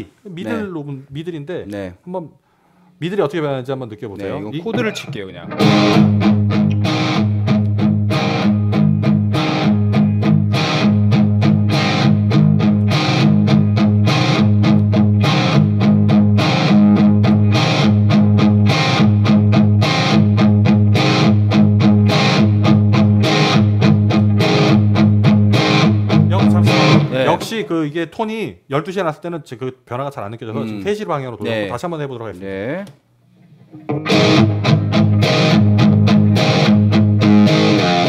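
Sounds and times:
distorted electric guitar strumming: 0:05.5 - 0:27.4, 0:33.6 - 0:38.0.

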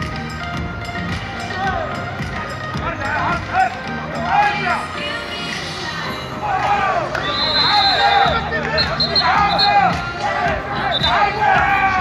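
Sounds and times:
people shouting: 0:03.0 - 0:04.9, 0:06.3 - 0:12.0
referee whistle: 0:07.1 - 0:10.0, 0:10.7 - 0:11.4.

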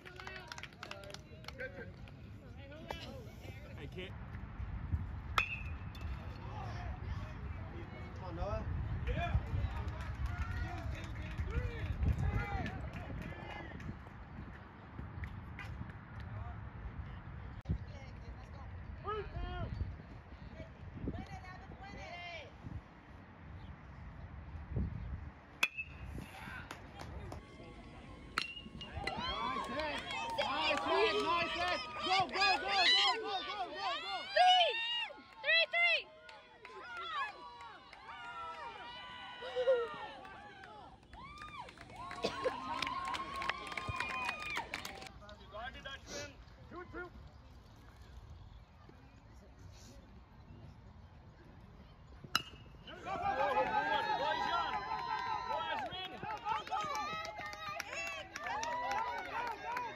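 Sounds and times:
metal bat hitting ball: 0:05.4 - 0:05.8, 0:25.6 - 0:26.1, 0:28.4 - 0:29.0, 0:52.3 - 0:52.7
spectators yelling and cheering: 0:26.3 - 0:45.1, 0:52.8 - 0:59.9.

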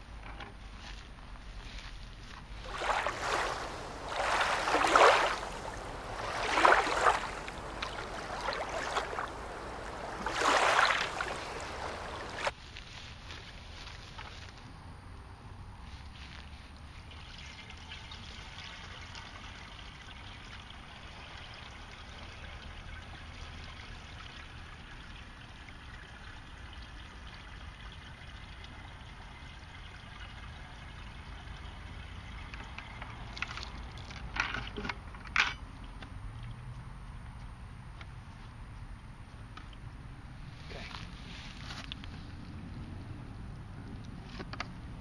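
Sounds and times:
water trickling into bucket: 0:02.5 - 0:12.5, 0:17.0 - 0:34.9.

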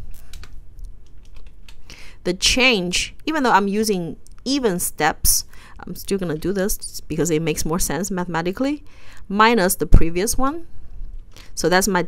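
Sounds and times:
keyboard typing: 0:00.2 - 0:01.9.

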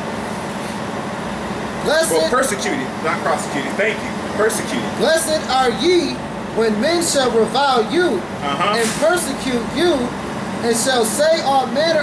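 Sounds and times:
outdoor background noise: 0:00.0 - 0:12.0
man speaking: 0:01.8 - 0:06.2, 0:08.4 - 0:09.0.

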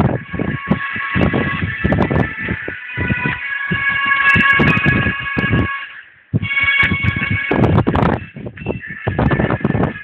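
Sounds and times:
high siren-like tones: 0:00.0 - 0:10.0.

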